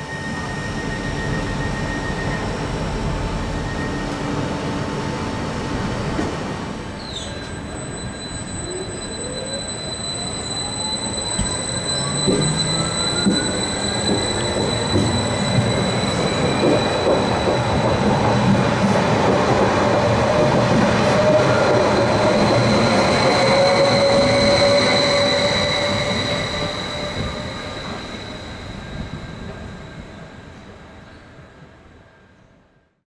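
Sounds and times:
train wheels rumbling on rails: 0:10.2 - 0:31.8.

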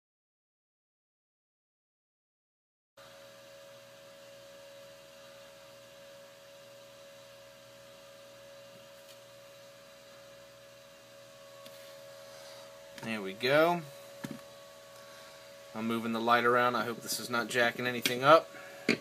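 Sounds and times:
small electric fan humming: 0:03.0 - 0:19.0.

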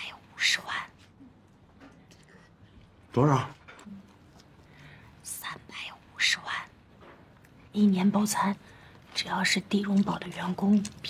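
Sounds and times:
woman whispering: 0:00.0 - 0:01.2, 0:05.2 - 0:06.8.

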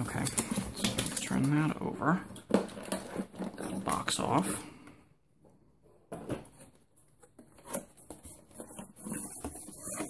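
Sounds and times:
cardboard scraping rustle: 0:06.2 - 0:10.0.

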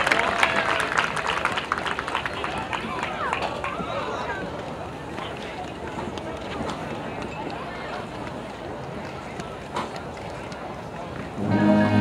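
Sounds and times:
open-air stadium ambience: 0:00.0 - 0:12.0
spectators talking: 0:00.0 - 0:12.0.

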